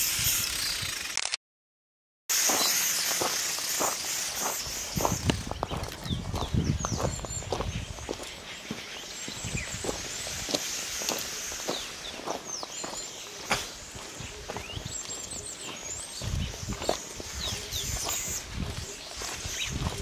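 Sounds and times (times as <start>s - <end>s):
steady hiss: 2.3s - 5.6s, 9.2s - 14.2s
footsteps on gravel: 2.3s - 20.0s.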